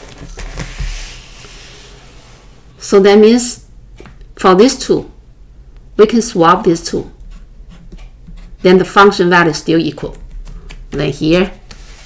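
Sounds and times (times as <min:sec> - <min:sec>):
paper sliding across a desk: 0:00.4 - 0:02.7, 0:11.6 - 0:12.0.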